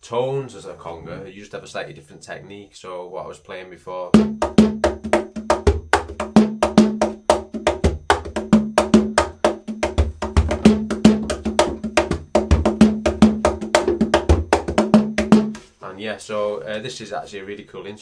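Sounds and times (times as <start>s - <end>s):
box drum played by hand: 4.1s - 15.7s.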